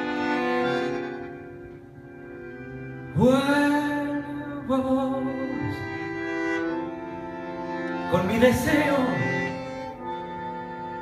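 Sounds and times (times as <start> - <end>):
tango ensemble music: 0.0 - 11.0.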